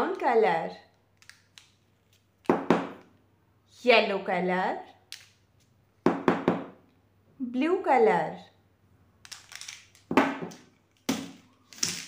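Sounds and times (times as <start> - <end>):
marker pen knocking on table: 2.5 - 3.0, 6.1 - 6.7, 10.1 - 11.3.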